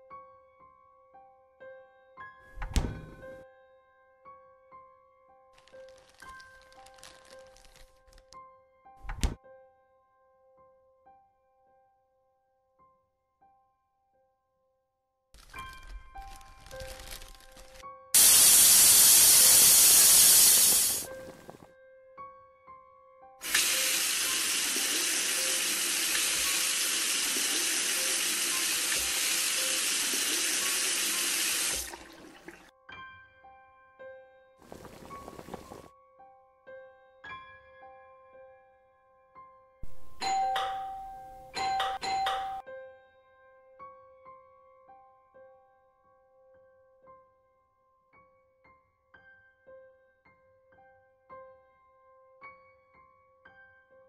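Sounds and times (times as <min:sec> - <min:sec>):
soft piano music: 0:00.0 - 0:18.4, 0:19.2 - 0:54.0
refrigerator door shutting: 0:02.6 - 0:03.4, 0:09.0 - 0:09.4
tap running into sink: 0:16.6 - 0:21.6, 0:23.4 - 0:32.7.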